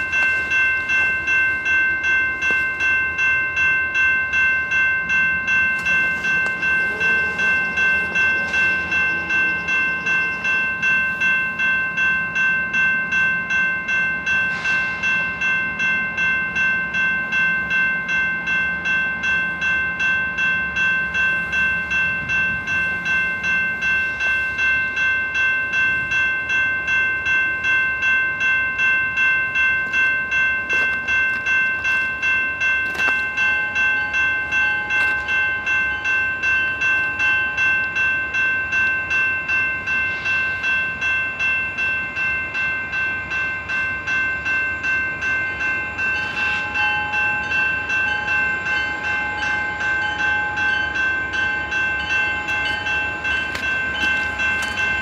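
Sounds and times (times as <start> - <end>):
railroad crossing bell ringing: 0.0 - 55.0.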